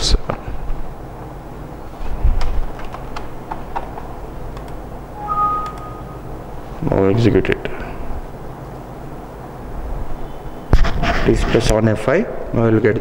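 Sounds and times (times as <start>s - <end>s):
low room hum: 0.0s - 13.0s
keyboard and mouse clicks: 4.5s - 6.0s
faint high tone: 5.2s - 6.3s.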